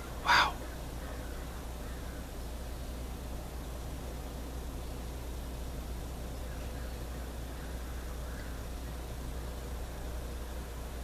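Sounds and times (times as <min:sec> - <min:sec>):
sharp bird call: 0:00.0 - 0:02.3
low hum: 0:00.0 - 0:11.0.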